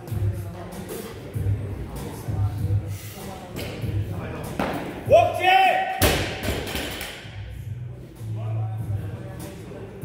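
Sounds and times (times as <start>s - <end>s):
person shouting: 5.1s - 6.0s.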